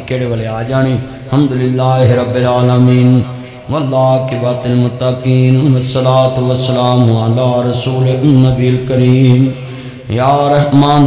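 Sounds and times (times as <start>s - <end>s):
man chanting over microphone: 0.0s - 11.0s.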